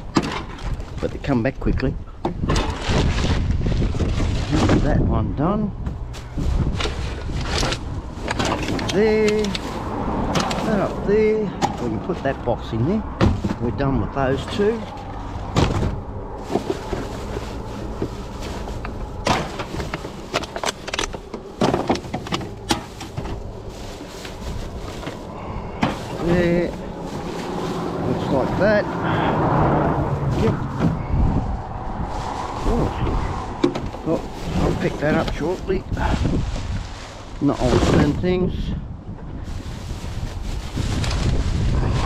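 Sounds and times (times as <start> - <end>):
plastic bags rustling: 6.0 - 29.3, 29.9 - 38.5, 39.4 - 42.0
broad rushing noise: 8.0 - 38.2, 39.4 - 42.0.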